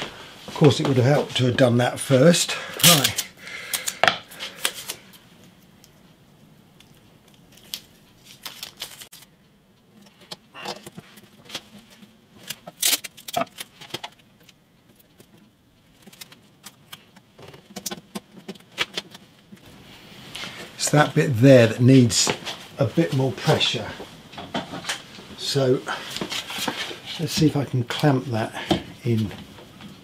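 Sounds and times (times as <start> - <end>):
masking tape tearing: 2.7 - 5.1, 12.4 - 13.8.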